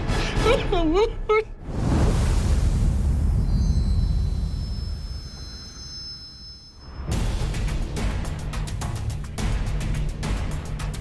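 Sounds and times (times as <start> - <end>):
faint high ringing tones: 3.4 - 7.1.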